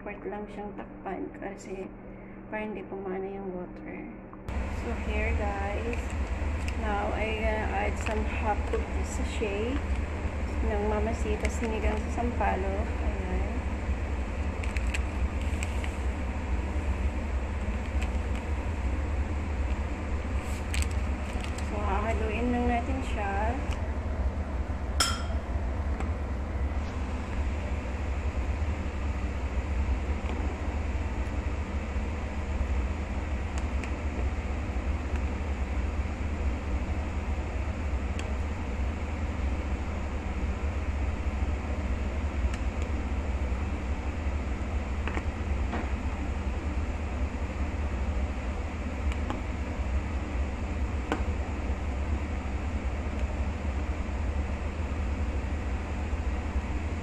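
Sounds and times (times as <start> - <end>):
broth boiling on gas burner: 4.5 - 57.0.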